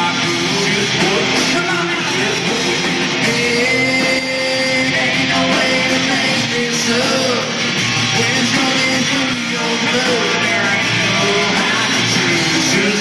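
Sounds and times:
live country-rock band playing: 0.0 - 13.0
person singing: 0.0 - 13.0.

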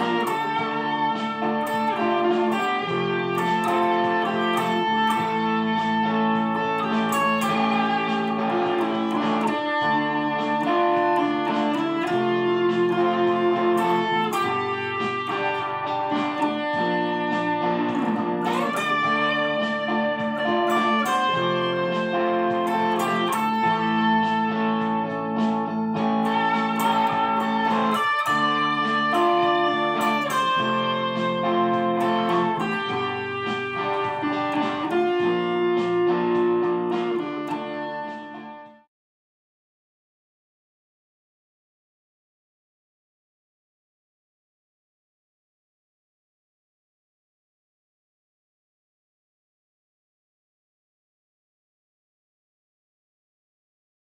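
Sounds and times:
sustained chord accompaniment: 0.0 - 38.8
electric guitar lead line: 0.0 - 38.9.

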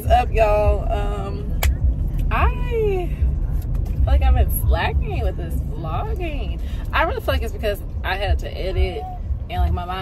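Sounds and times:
woman talking: 0.0 - 3.4, 4.0 - 10.0
car engine rumble: 0.0 - 10.0.

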